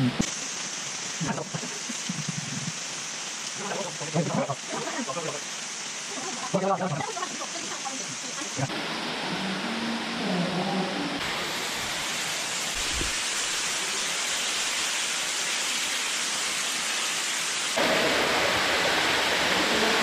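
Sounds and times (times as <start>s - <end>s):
water rushing in a cave: 0.0s - 20.0s.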